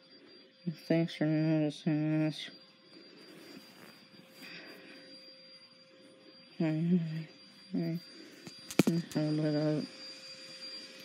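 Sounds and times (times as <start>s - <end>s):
faint high electronic tone: 0.0s - 11.0s.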